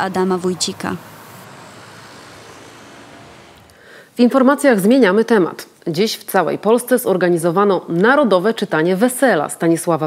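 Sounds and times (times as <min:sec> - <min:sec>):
distant vehicles humming: 0:00.0 - 0:04.1.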